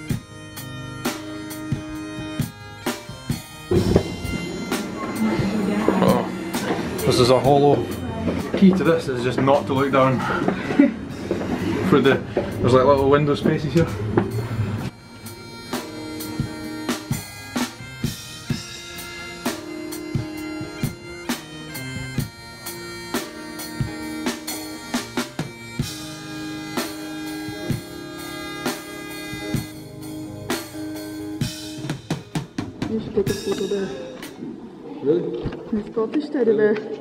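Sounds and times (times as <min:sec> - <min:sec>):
bagpipe melody: 0:00.0 - 0:13.6, 0:14.8 - 0:32.6
steady drum beat: 0:00.0 - 0:34.4.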